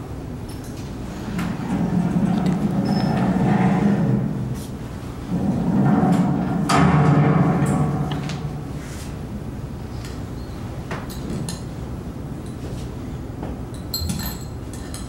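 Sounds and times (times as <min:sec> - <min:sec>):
low echoing rumble: 0:01.2 - 0:09.9.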